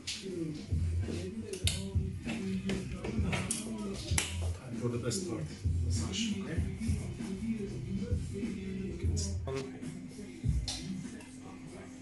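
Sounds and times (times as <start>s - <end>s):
background music with voice: 0.0s - 12.0s
sharp snaps: 3.5s - 4.4s.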